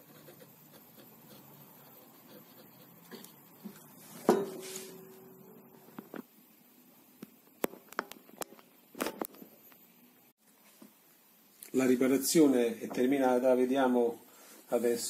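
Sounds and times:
guitar ringing tone: 4.3 - 5.8.

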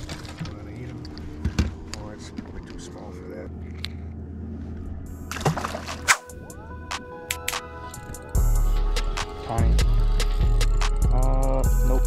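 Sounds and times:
low talk: 11.1 - 12.0.

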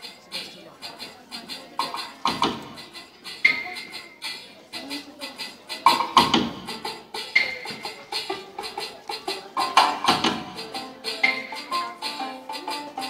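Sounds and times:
clacking wood-block beat: 0.0 - 13.0
music over loudspeakers: 0.0 - 13.0.

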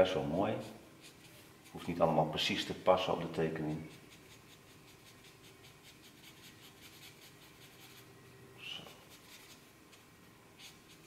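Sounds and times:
marker scratching on paper: 0.0 - 2.0, 3.8 - 8.1, 8.8 - 11.0.

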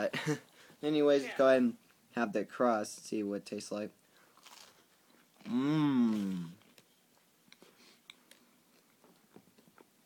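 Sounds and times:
chewing crunchy pizza crust: 4.3 - 6.9.

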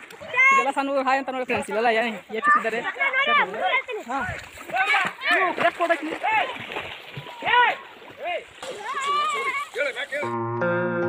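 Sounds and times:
people splashing in water: 0.0 - 10.3
men shouting and yelping: 7.2 - 10.3.

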